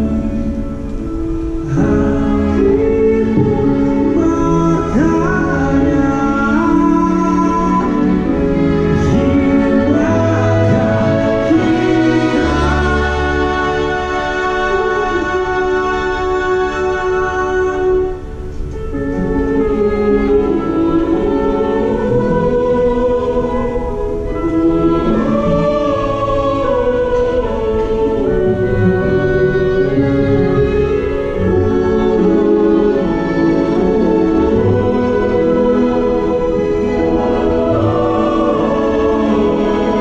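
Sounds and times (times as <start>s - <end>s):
choir singing held chords: 0.0s - 40.0s
orchestra: 0.0s - 40.0s.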